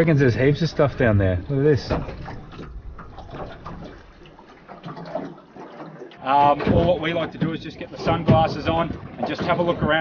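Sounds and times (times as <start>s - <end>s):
water lapping against boat hull: 0.0s - 10.0s.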